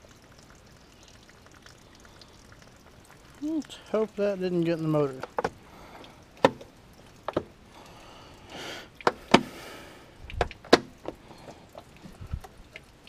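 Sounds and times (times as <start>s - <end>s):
hard plastic knocks and clatter: 5.2s - 5.6s, 6.4s - 7.5s, 10.3s - 11.2s.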